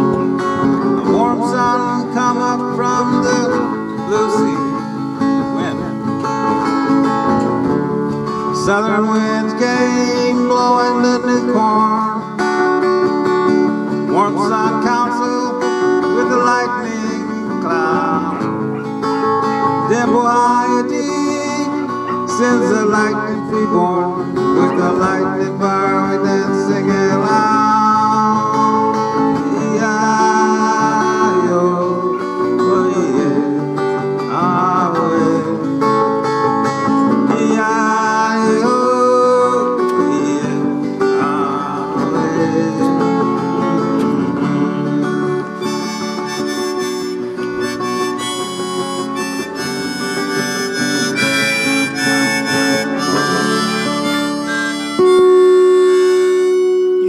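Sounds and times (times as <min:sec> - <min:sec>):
strummed acoustic guitar: 0:00.0 - 0:57.0
harmonica playing: 0:45.0 - 0:57.0.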